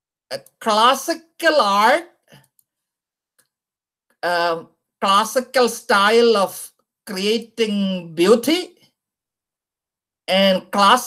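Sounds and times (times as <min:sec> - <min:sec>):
person speaking: 0:00.3 - 0:02.6, 0:04.2 - 0:08.8, 0:10.3 - 0:11.0.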